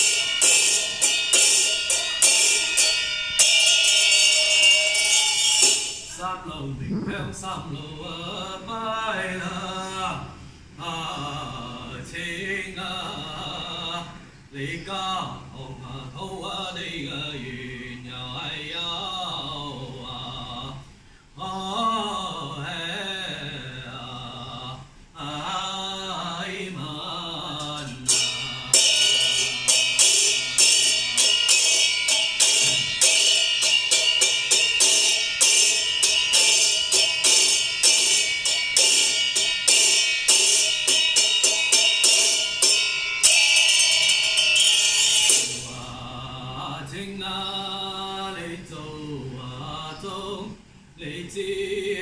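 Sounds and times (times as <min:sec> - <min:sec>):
struck metal percussion ringing: 0:00.0 - 0:06.2, 0:27.6 - 0:45.9
man chanting in sung phrases: 0:06.2 - 0:31.6, 0:45.5 - 0:52.0.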